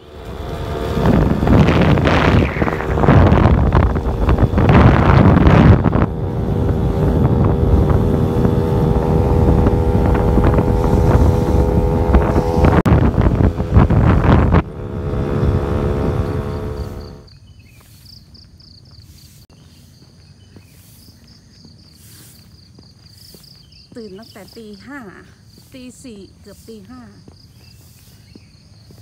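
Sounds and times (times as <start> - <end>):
wind buffeting microphone: 0.0 - 17.8
vehicle engine hum: 0.0 - 24.8.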